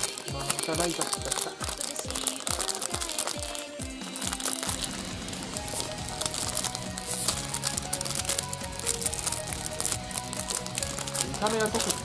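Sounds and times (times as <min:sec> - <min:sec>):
background music with bass notes: 0:00.0 - 0:02.6, 0:03.6 - 0:12.0
plastic wrapper crinkling and tearing: 0:00.0 - 0:12.0.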